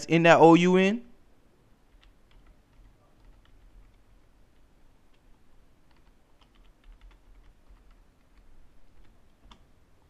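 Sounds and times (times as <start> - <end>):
faint keyboard typing: 1.8 - 10.0.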